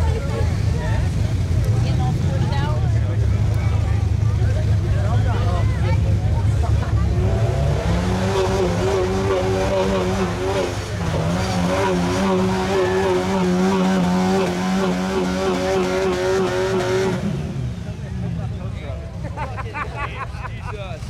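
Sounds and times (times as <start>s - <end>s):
engine revving high: 7.0s - 18.0s.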